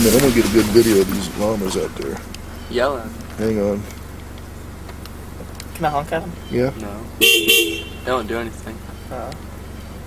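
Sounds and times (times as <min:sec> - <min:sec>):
vehicle engine idling: 0:00.0 - 0:10.0.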